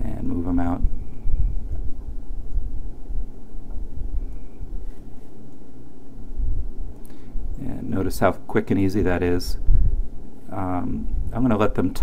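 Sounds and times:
low uneven microphone rumble: 0.0s - 5.4s, 6.0s - 12.0s.

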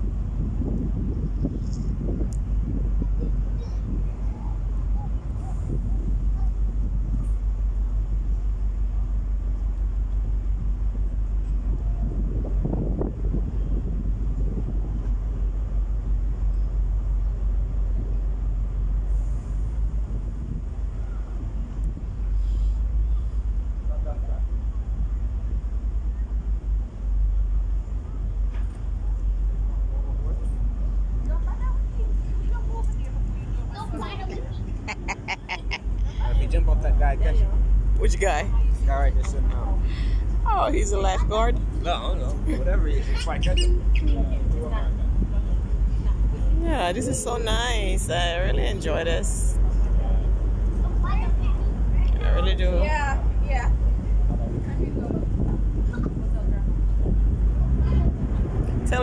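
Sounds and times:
ship engine noise: 0.0s - 59.0s
wind buffeting microphone: 0.0s - 59.0s
faint voices: 28.0s - 59.0s.

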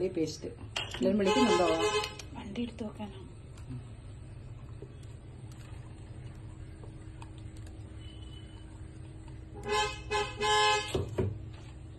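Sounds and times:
vehicle horn tooting: 1.2s - 2.2s, 9.6s - 11.0s.

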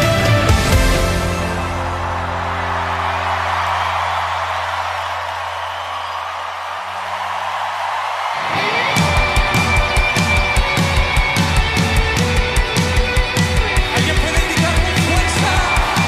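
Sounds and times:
worship rock band music: 0.0s - 6.2s, 6.9s - 16.0s
steady drum beats: 8.8s - 16.0s.

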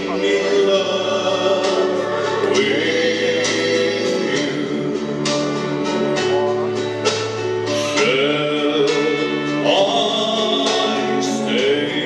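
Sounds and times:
man singing into a microphone: 0.0s - 6.3s, 7.6s - 12.0s
instrumental accompaniment: 0.0s - 12.0s.

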